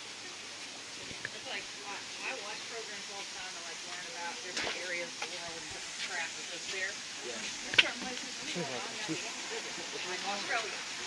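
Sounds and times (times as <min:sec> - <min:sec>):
steady background hiss: 0:00.0 - 0:11.0
people talking indistinctly: 0:01.3 - 0:11.0.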